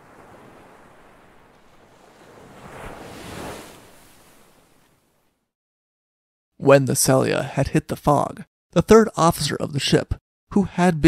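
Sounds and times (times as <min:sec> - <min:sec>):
ocean surf: 0:00.0 - 0:05.3.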